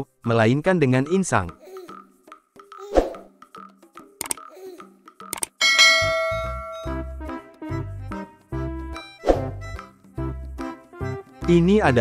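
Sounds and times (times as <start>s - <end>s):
quick clicks: 4.2s - 4.4s, 5.3s - 5.6s
bell chime ringing: 5.6s - 7.1s.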